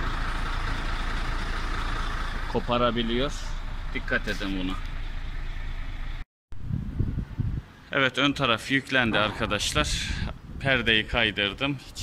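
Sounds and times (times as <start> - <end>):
diesel engine idling: 0.0 - 6.2
low rumbling noise: 0.0 - 7.8.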